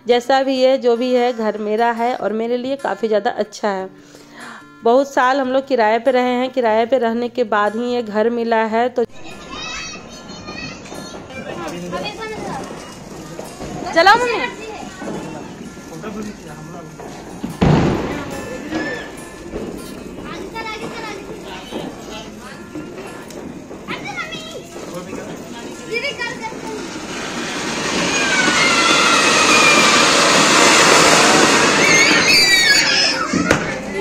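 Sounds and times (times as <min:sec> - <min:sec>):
noisy outdoor background: 0:08.2 - 0:34.0
children's voices and chatter: 0:09.0 - 0:34.0
firework fountain hissing: 0:09.2 - 0:34.0.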